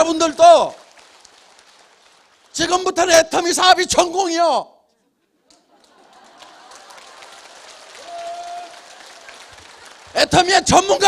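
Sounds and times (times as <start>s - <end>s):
audience clapping: 0.0s - 3.5s, 5.5s - 11.0s.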